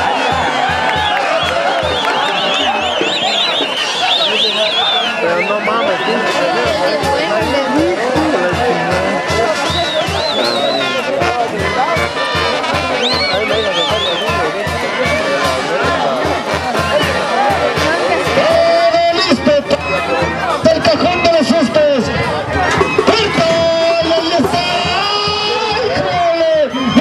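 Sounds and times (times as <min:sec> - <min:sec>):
brass band music: 0:00.0 - 0:27.0
crowd of voices: 0:00.0 - 0:27.0.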